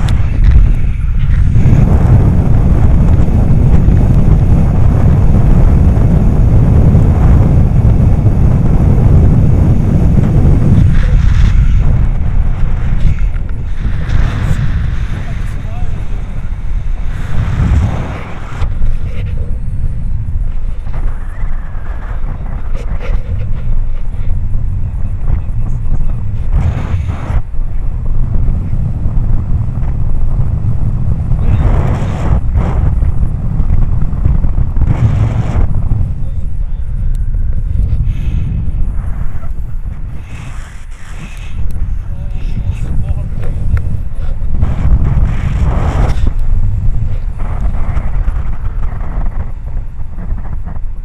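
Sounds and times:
wind rumbling on microphone: 0.0 - 51.0.

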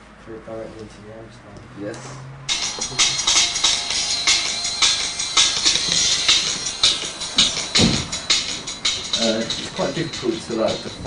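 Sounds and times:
drum and bass music through headphones: 2.5 - 11.0
deep bass hit: 5.4 - 8.4.

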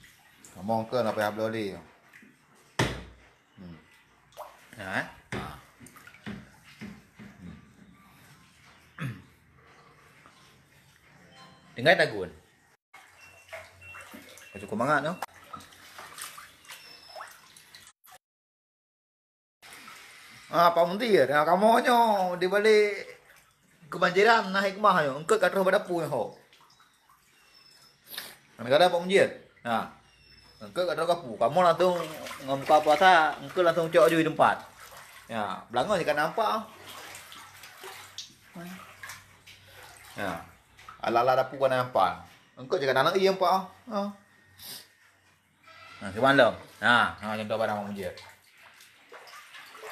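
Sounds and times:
floodwater splashing and plopping: 0.0 - 11.1, 13.0 - 18.2, 19.6 - 20.2, 21.8 - 24.2, 25.0 - 29.2, 30.1 - 41.2, 46.5 - 49.9.

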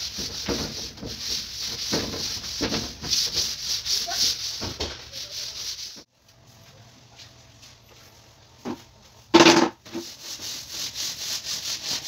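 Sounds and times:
scrubbing on metal frame: 0.0 - 6.1.

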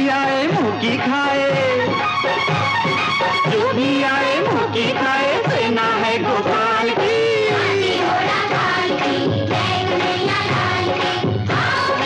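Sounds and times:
devotional film song: 0.0 - 12.0
steady percussion: 0.0 - 12.0.

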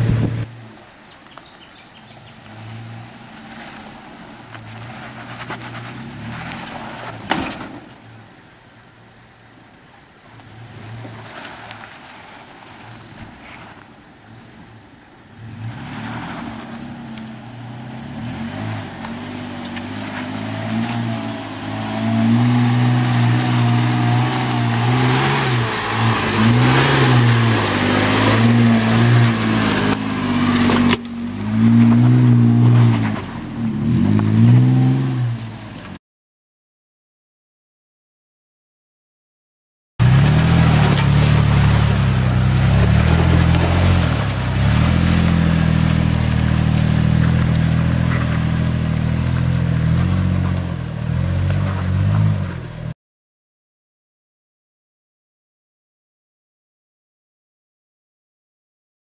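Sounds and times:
engine revving under load: 15.4 - 35.6, 40.0 - 53.0.

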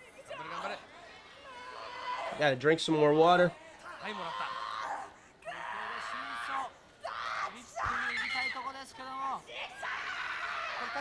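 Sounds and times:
women screaming: 0.0 - 2.4, 3.7 - 8.8, 9.5 - 11.0.

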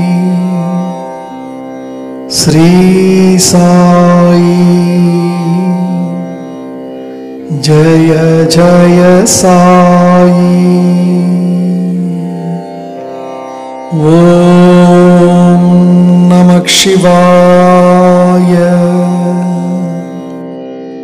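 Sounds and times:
long sung notes: 0.0 - 21.0.

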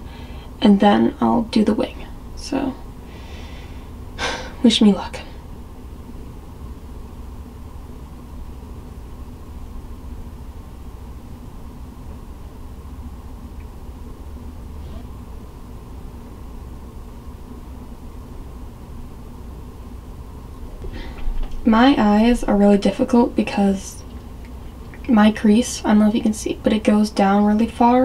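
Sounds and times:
low background rumble: 0.0 - 28.0.

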